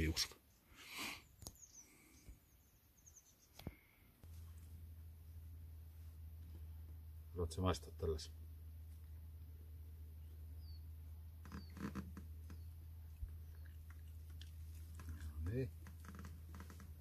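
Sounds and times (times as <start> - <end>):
dog chewing: 13.1 - 15.3.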